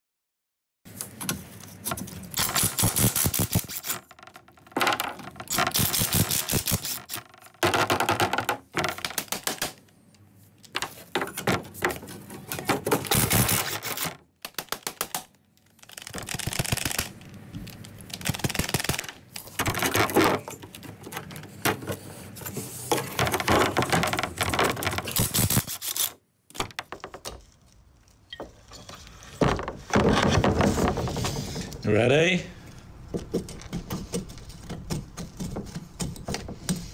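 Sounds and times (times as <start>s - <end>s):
pneumatic impact tool rattling on metal: 2.4s - 4.1s, 5.5s - 7.2s, 13.0s - 14.1s, 25.0s - 26.2s.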